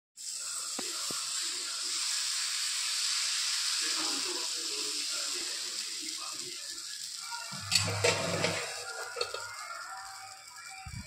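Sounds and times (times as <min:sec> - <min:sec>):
batter sizzling on hot pan: 0:00.2 - 0:11.0.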